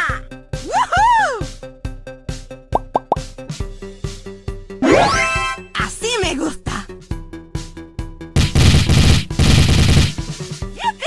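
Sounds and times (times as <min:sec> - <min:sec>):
upbeat background music: 0:00.0 - 0:11.0
rising plop sound effects: 0:02.7 - 0:03.3.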